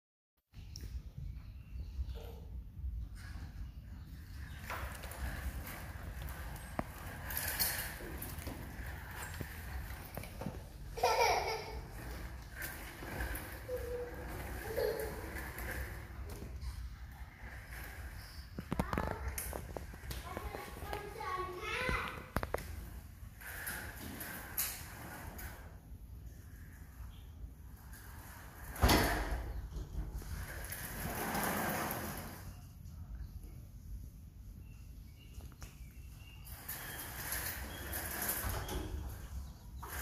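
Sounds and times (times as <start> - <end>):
children talking: 10.9 - 16.2, 18.6 - 22.5.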